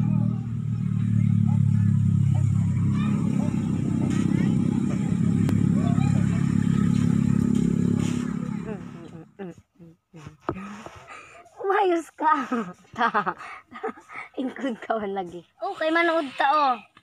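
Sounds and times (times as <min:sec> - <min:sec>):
small engine droning: 0:00.0 - 0:09.5.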